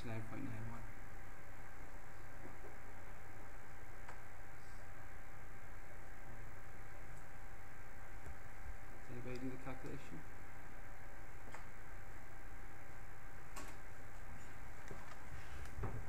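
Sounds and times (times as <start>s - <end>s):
background hiss: 0.0s - 16.0s.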